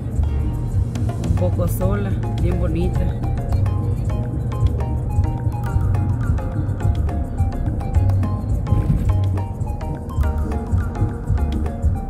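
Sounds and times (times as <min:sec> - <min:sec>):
music with beat and deep bass: 0:00.0 - 0:12.0.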